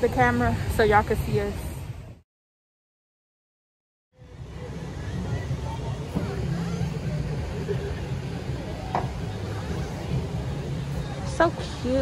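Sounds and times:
faint voices murmuring: 4.2 - 12.0.

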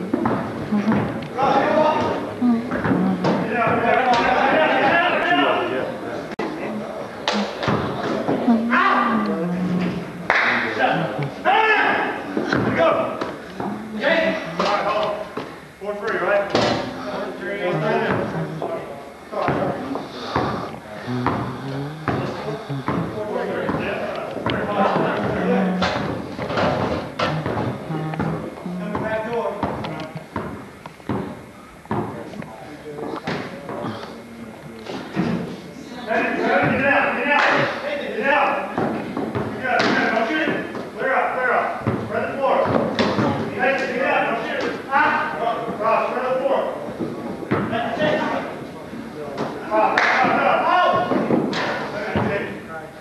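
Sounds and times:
indistinct talk echoing: 0.0 - 53.0
basketball bouncing on floor: 27.3 - 32.2.

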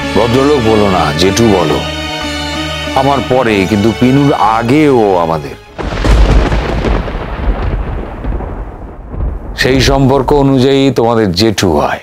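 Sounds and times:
thunder-like boom: 5.8 - 10.7.

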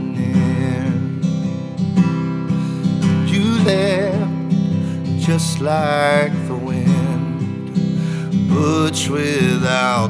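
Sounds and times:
man singing: 0.0 - 1.7, 2.8 - 10.0
acoustic guitar strumming: 0.0 - 10.0.

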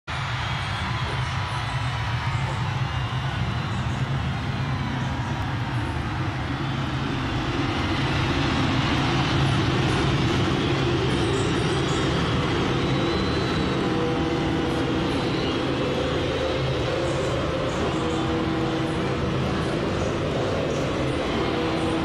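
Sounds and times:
stadium crowd cheering and screaming: 0.0 - 22.0.

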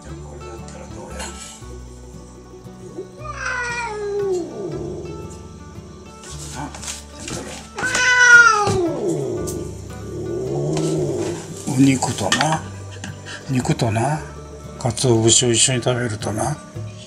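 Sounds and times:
background music: 0.0 - 17.0
cat meowing: 2.9 - 5.4, 7.8 - 11.6.

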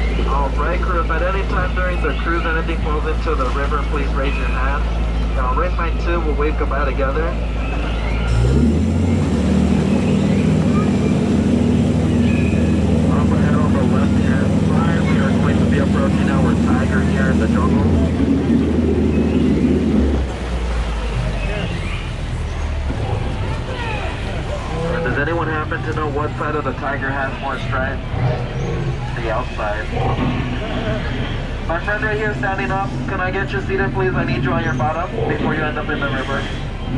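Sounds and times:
faint voices: 0.0 - 8.4, 9.2 - 36.9
boat motor humming: 0.0 - 36.9.

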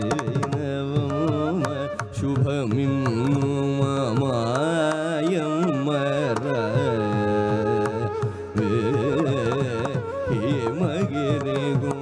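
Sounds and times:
man singing ornamented phrases: 0.0 - 12.0.

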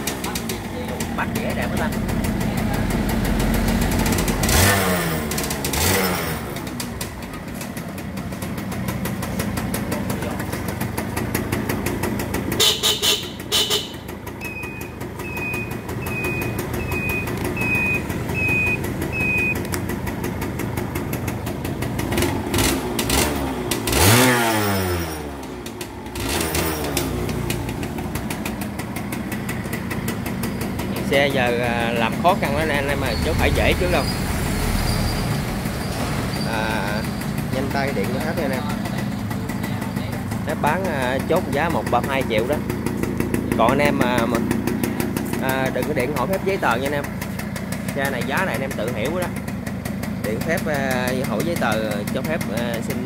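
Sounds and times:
motorcycle engine idling: 0.0 - 53.0
motorcycle engine revving: 0.0 - 53.0
short high beeps: 14.4 - 19.6.

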